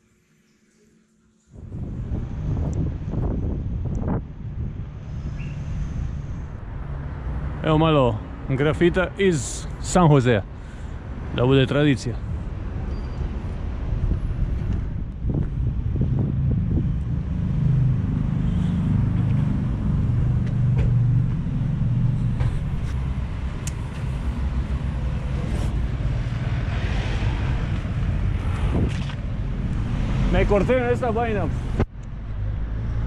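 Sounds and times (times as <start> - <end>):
city traffic rumble: 1.5 - 33.0
vehicle swishing past: 16.1 - 31.8.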